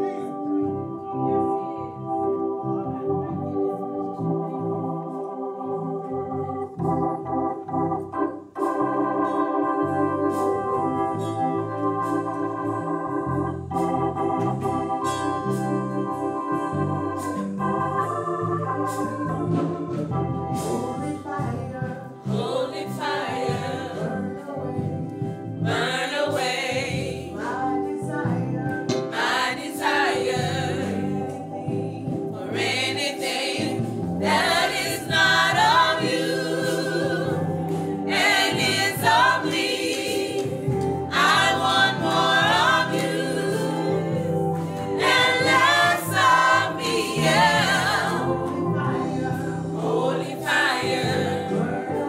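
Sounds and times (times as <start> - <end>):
gospel choir singing: 0.0 - 52.0
organ sustained chords: 0.0 - 52.0.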